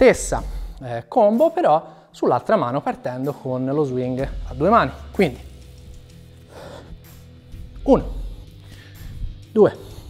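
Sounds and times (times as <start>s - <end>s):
background music: 0.0s - 10.0s
man's sharp breath: 8.3s - 10.0s.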